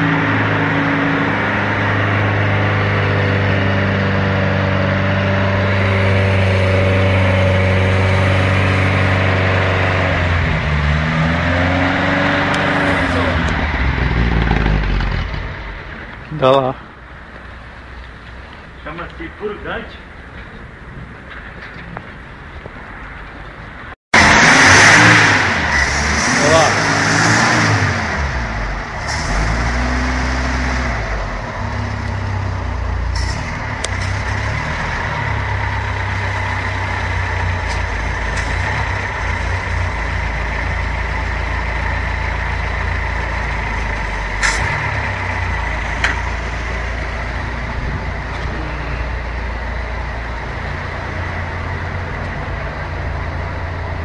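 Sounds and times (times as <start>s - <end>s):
car engine revving and idling: 0.0s - 19.2s, 24.2s - 54.0s.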